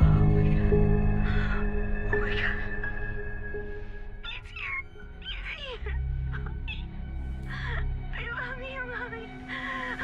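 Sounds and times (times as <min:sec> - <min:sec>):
low ominous music drone: 0:00.0 - 0:10.0.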